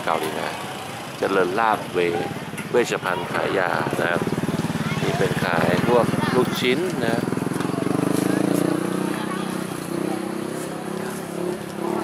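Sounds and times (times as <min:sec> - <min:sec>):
small engine idling: 0:00.2 - 0:10.4.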